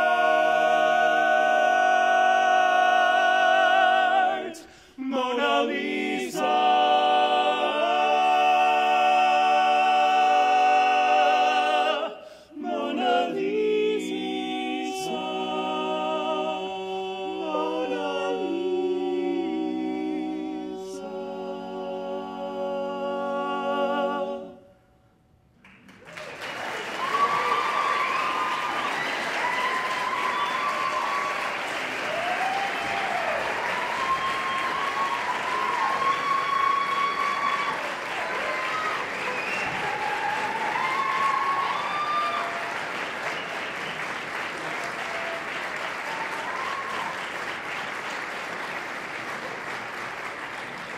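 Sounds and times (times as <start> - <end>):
audience applauding: 25.6 - 50.9
whoops and cheering: 26.0 - 43.6, 44.6 - 47.3.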